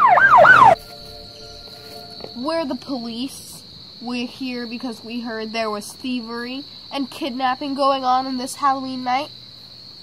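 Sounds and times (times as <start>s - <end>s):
police siren yelping: 0.0s - 1.8s
crickets chirring: 0.0s - 10.0s.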